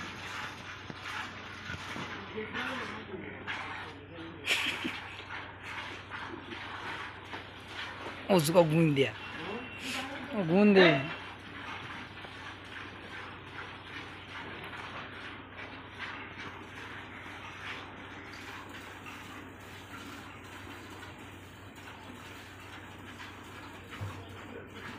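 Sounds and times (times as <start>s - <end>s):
milk squirting into plastic bucket: 0.0s - 4.0s, 4.9s - 10.2s.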